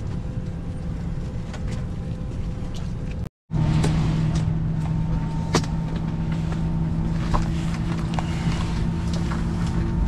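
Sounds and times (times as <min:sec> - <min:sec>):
airliner cabin hum: 0:00.0 - 0:10.0.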